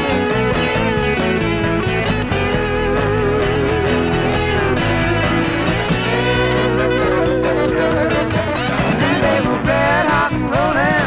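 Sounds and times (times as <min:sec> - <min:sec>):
pop song from vinyl record: 0:00.0 - 0:11.0.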